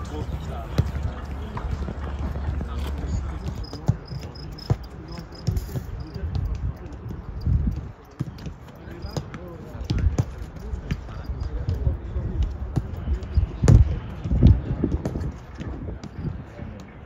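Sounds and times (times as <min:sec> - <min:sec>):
players' voices: 0:00.0 - 0:17.0.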